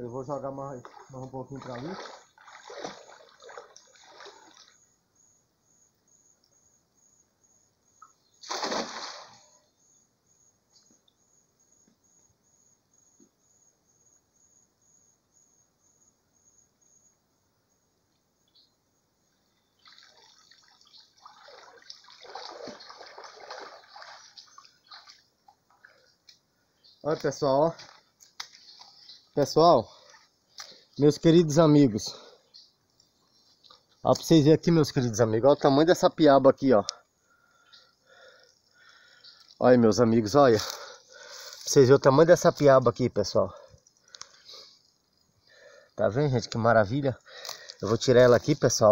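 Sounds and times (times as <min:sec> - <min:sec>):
water splashing and dripping: 0:00.6 - 0:04.8, 0:08.4 - 0:09.5, 0:19.8 - 0:26.4, 0:27.1 - 0:31.2
net splashing onto water: 0:01.6 - 0:04.7, 0:08.4 - 0:09.5, 0:19.8 - 0:25.2.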